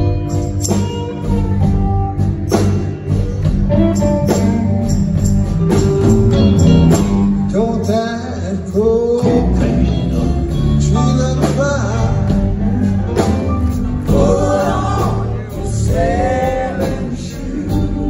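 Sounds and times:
live rock band playing: 0.0 - 18.0.

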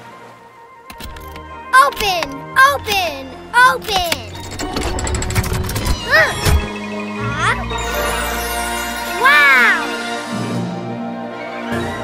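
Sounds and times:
background music: 0.0 - 12.0
rapid mechanical clicks: 4.0 - 6.7.

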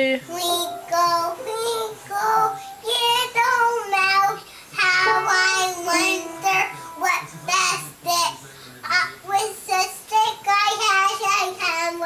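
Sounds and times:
upright piano notes: 0.3 - 3.4, 4.8 - 8.0
girl singing: 0.3 - 8.3.

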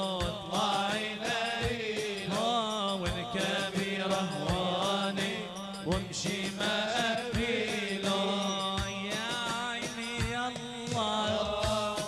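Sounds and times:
person singing a chant: 0.0 - 10.3.

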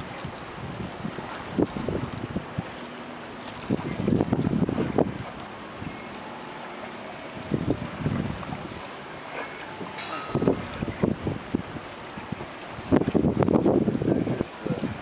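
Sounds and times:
choppy lake water: 0.0 - 15.0
wind buffeting microphone: 0.0 - 15.0.

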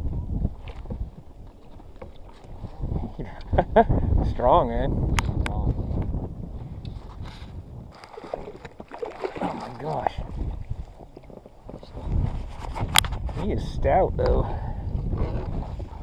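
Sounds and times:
water around boat: 0.0 - 16.0
wind rumble on microphone: 0.0 - 16.0.

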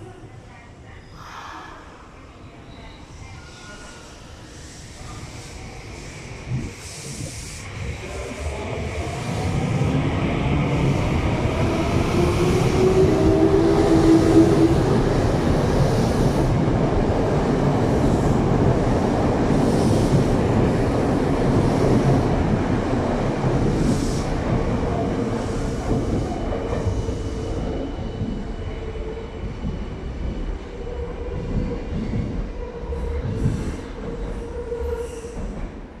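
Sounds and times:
subway train motors whining: 1.8 - 36.0
train wheels rumbling and clattering: 6.4 - 36.0.

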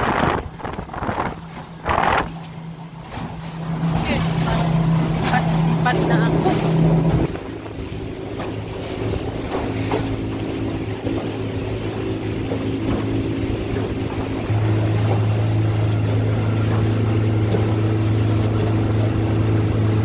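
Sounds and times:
outboard motor running: 0.0 - 20.0
rushing water: 0.0 - 20.0
wind: 0.0 - 20.0.

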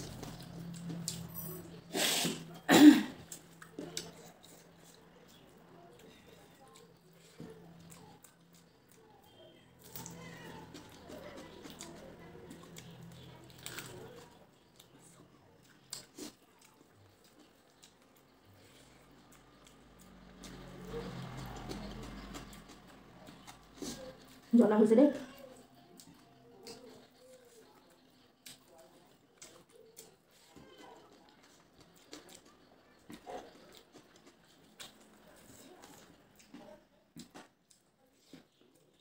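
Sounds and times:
chewing and wet mouth noises: 0.0 - 24.5, 25.1 - 39.0.

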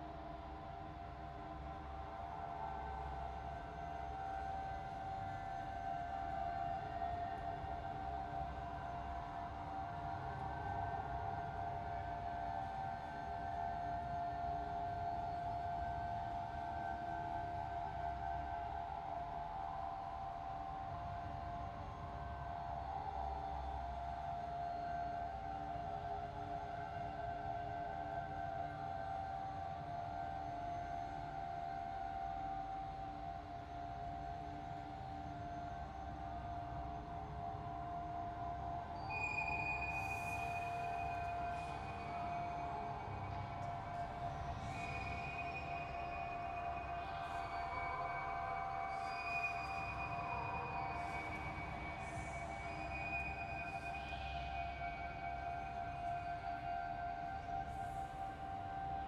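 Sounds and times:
eerie drone tones: 0.0 - 59.0.

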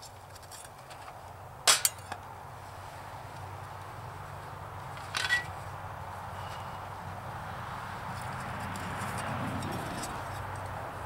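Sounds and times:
metal grill parts clicking: 1.7 - 2.2.

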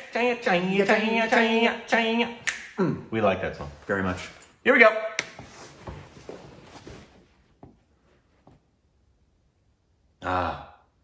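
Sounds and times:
people shuffling on a couch: 5.4 - 8.6.

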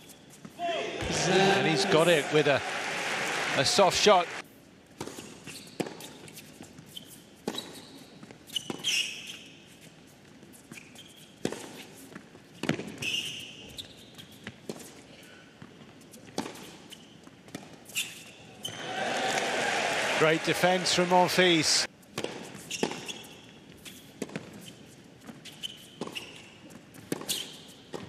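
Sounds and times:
sneakers squeaking on court: 5.0 - 15.0, 22.2 - 28.0.

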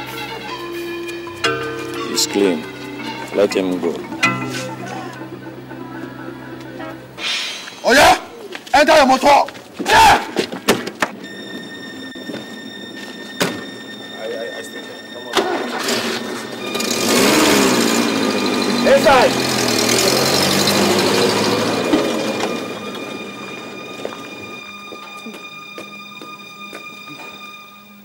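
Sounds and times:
car engine revving: 15.3 - 24.8.

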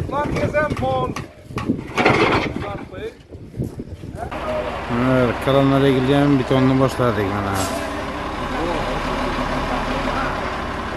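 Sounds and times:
truck engine running: 3.6 - 10.9.

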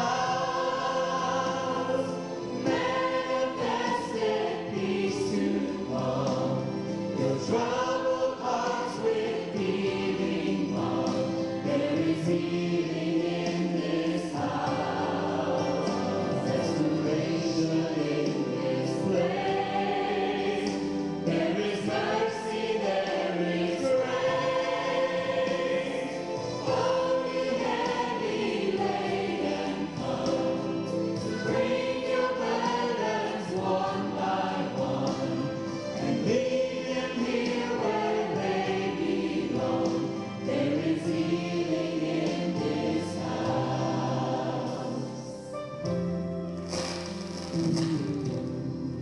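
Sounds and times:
gospel choir singing with music: 0.0 - 49.0.

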